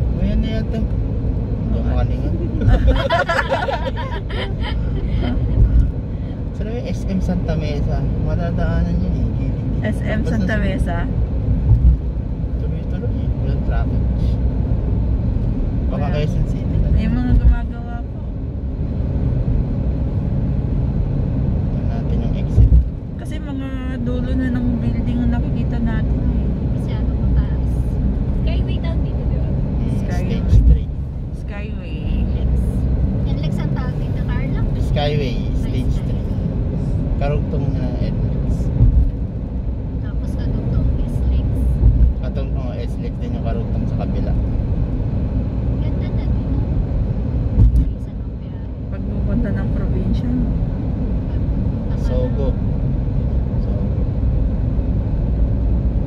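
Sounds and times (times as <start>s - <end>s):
road and engine rumble: 0.0s - 56.0s
short low thump: 11.6s - 12.1s, 38.7s - 39.2s, 41.8s - 42.2s, 47.5s - 47.9s.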